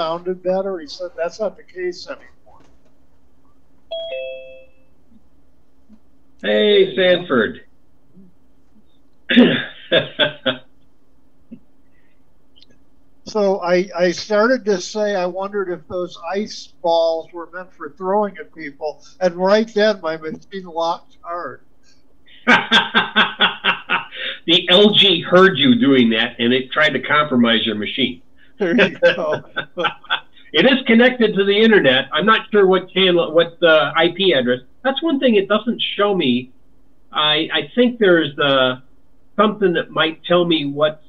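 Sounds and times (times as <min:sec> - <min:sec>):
two-note descending chime: 0:03.9 - 0:04.8
man chuckling: 0:09.3 - 0:10.6, 0:22.3 - 0:25.2, 0:28.6 - 0:30.9.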